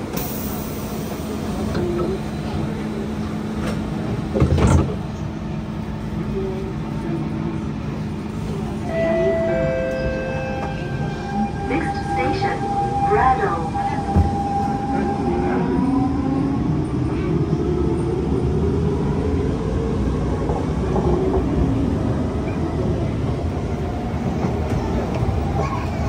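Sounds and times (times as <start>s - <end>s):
train running rumble: 0.0s - 26.0s
train clatter: 3.5s - 5.2s.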